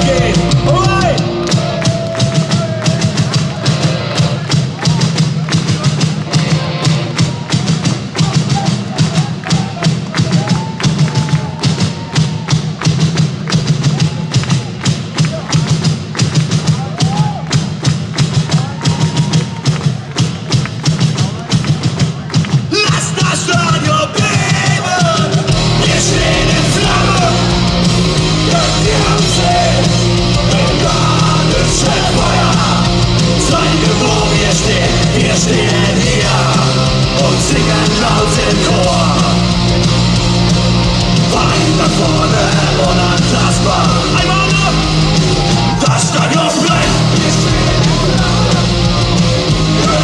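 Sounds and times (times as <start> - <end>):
drum kit fast beat: 0.0 - 50.0
full rock band: 0.0 - 50.0
voices: 22.3 - 50.0
held bass note: 25.6 - 45.8.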